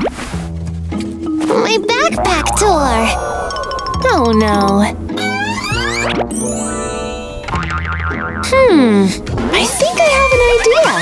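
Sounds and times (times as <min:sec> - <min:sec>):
background music: 0:00.4 - 0:11.0
slowly falling cartoon tone: 0:02.0 - 0:07.9
quick wavering tone: 0:02.1 - 0:07.7.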